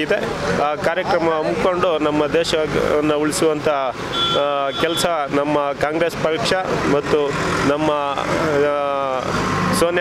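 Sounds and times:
man speaking: 0:00.0 - 0:10.0
road traffic rumble: 0:00.0 - 0:10.0.

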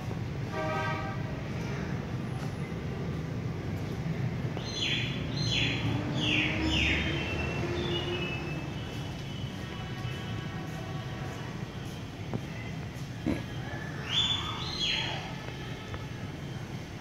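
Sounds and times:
city traffic rumble: 0:00.0 - 0:17.0.

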